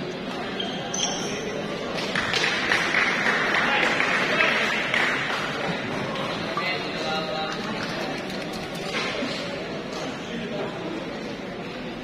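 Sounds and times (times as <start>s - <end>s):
crowd chatter: 0.0s - 12.0s
shoes squeaking on court: 0.4s - 1.5s.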